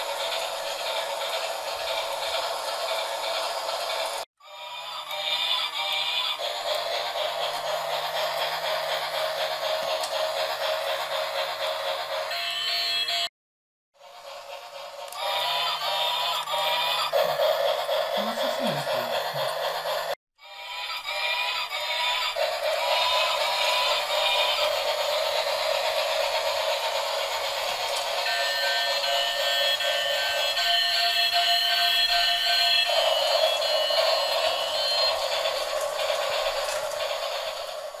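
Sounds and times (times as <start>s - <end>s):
toy train electronic melody: 0.0s - 13.3s, 14.0s - 38.0s.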